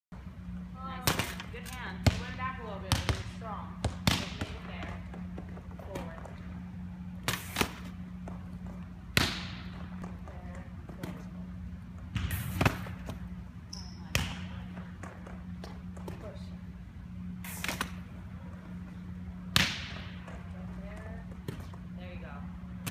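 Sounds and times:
low hum: 0:00.1 - 0:22.9
volleyballs bouncing on gym floor: 0:00.9 - 0:16.6, 0:19.4 - 0:22.9.

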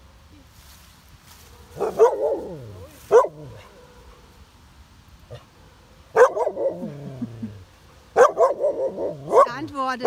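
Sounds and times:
dog barking: 0:01.8 - 0:04.0, 0:06.1 - 0:06.8, 0:08.2 - 0:09.7.

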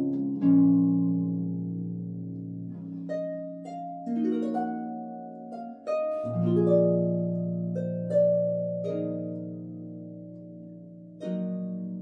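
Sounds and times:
harp plucked chord: 0:00.0 - 0:12.0.

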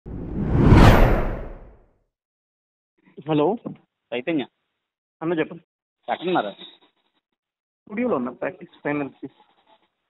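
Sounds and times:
low rumble: 0:00.1 - 0:01.7
whoosh rising in pitch: 0:00.1 - 0:01.7.

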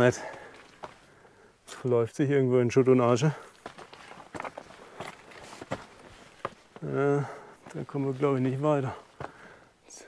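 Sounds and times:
footsteps on gravel and rubble: 0:00.0 - 0:01.1, 0:03.3 - 0:09.5.

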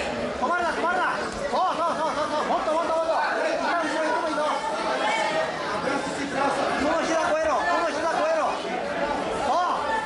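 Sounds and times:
voices talking and calling out: 0:00.0 - 0:10.0.

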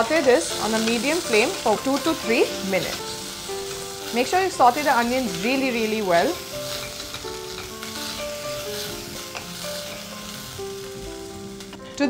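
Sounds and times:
onions sizzling in hot oil: 0:00.0 - 0:12.0
soft background music: 0:00.0 - 0:12.0.

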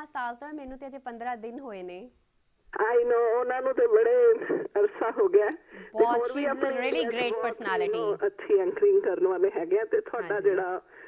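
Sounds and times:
person talking over telephone: 0:02.8 - 0:10.9.

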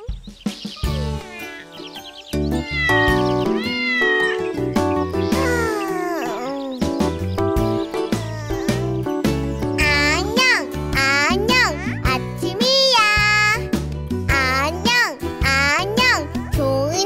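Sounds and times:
children's song backing music: 0:00.0 - 0:17.0
cartoon cat meowing: 0:00.8 - 0:01.8, 0:02.6 - 0:04.6, 0:05.2 - 0:06.9, 0:07.9 - 0:09.0.

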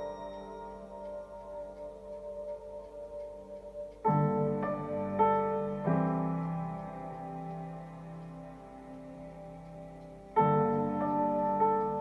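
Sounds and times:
slow piano music: 0:00.0 - 0:12.0.

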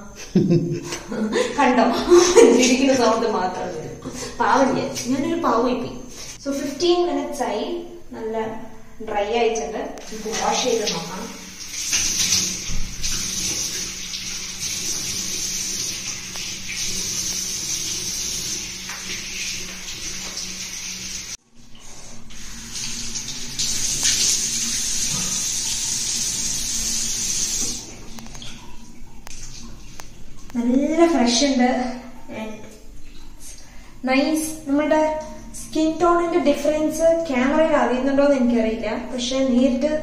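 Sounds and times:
water running from sink tap: 0:10.0 - 0:33.5.

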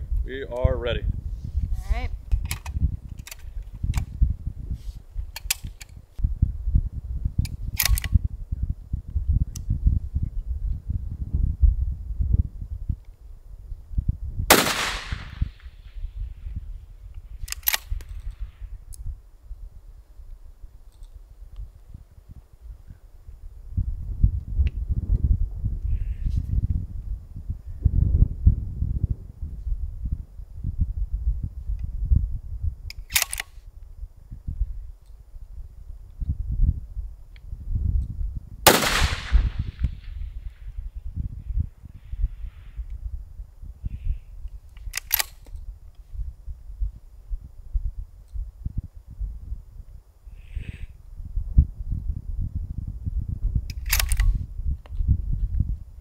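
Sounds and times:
wind rumbling on microphone: 0:00.0 - 0:56.0
rifle shot with ring: 0:14.5 - 0:15.8, 0:38.7 - 0:40.3
sharp clicks: 0:17.4 - 0:19.0, 0:32.9 - 0:33.5, 0:44.7 - 0:45.6, 0:53.7 - 0:55.0.

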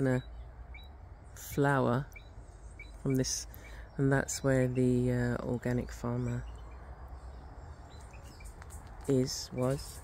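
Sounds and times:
faint bird chirps: 0:00.0 - 0:10.0
low steady rumble: 0:00.0 - 0:10.0.

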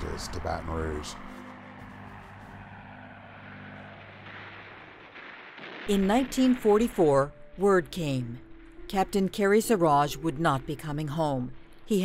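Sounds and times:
propeller aircraft engines droning: 0:00.0 - 0:12.0.

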